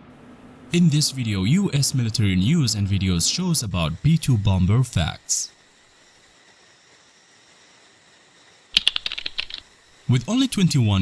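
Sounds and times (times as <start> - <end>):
sharp clicks: 8.8 - 9.7.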